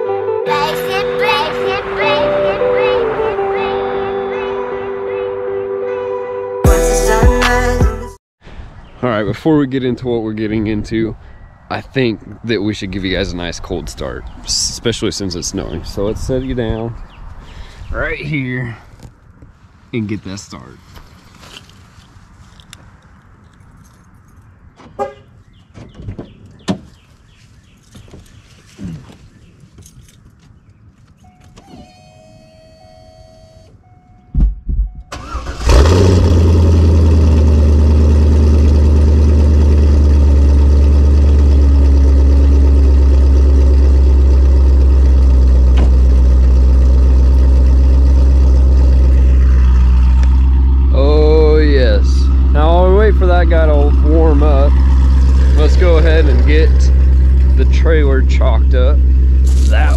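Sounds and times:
car engine idling loudly: 35.7 - 59.9.

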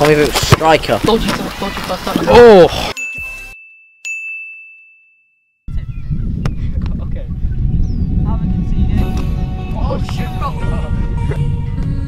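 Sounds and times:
bell-like ding: 3.0 - 5.6.

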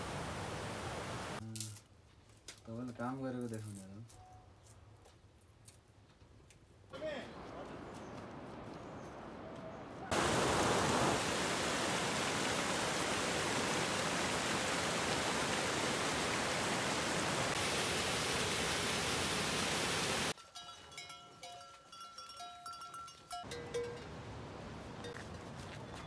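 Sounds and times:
small waterfall rushing: 0.0 - 1.4, 10.1 - 20.4.

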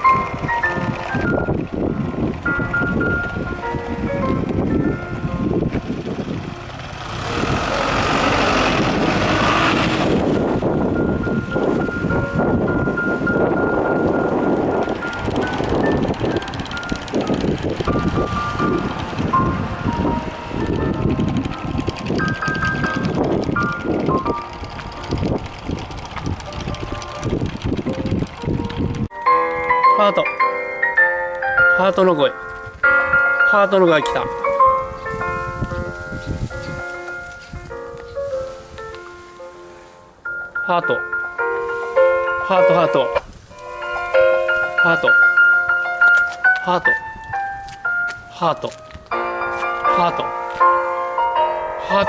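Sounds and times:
wind buffeting microphone: 0.0 - 29.7, 31.6 - 39.4, 41.4 - 52.0
melody of thin high notes: 29.1 - 48.2.

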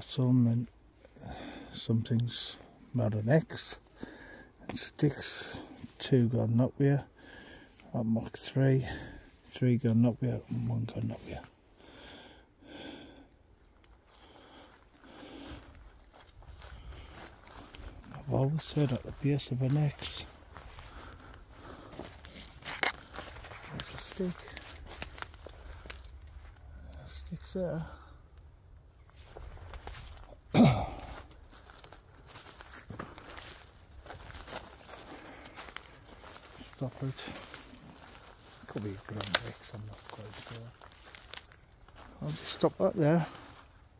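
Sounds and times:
footsteps in dry leaves: 14.1 - 26.8, 29.1 - 43.9
twigs snapping: 20.9 - 26.6, 37.4 - 42.1.

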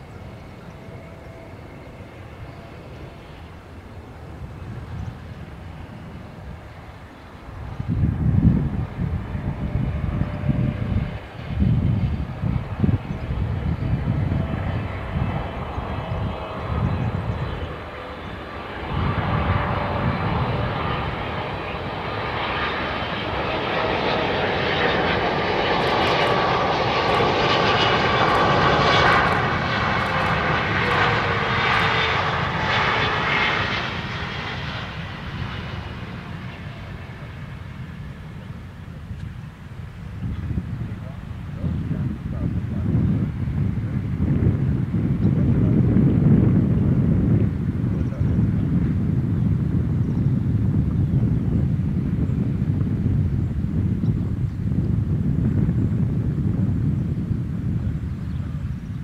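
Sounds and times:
jet airliner engines whining: 0.0 - 59.0.

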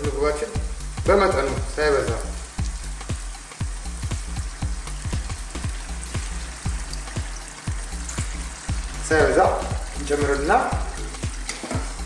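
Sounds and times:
water pouring into stew: 1.5 - 12.0.

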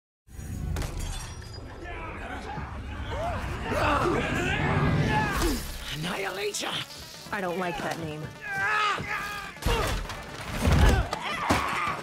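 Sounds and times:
glass shattering: 0.5 - 1.7.

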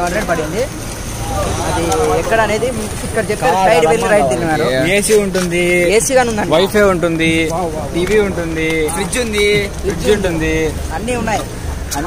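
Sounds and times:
low outdoor rumble: 0.0 - 12.0
man talking: 3.4 - 5.9, 6.5 - 12.0.

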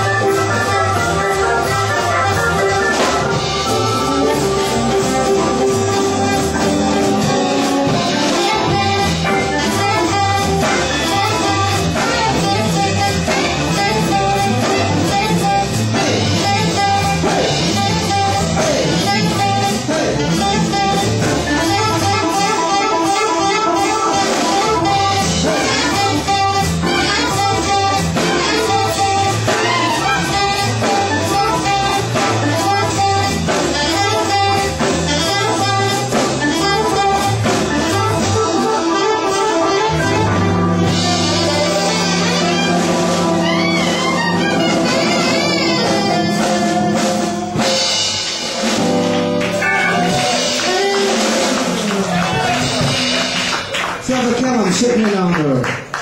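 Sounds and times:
alto saxophone: 0.0 - 53.9
electric guitar: 0.0 - 54.1
drum kit: 0.0 - 56.0.

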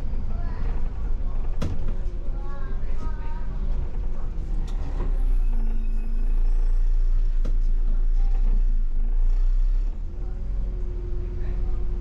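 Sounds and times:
bus engine rumble: 0.0 - 12.0.

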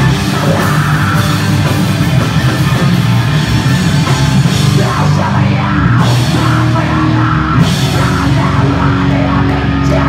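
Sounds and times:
live hardcore band playing: 0.0 - 10.0.

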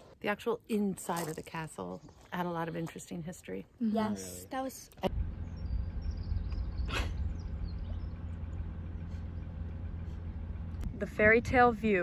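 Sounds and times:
car driving rumble: 4.2 - 12.0.

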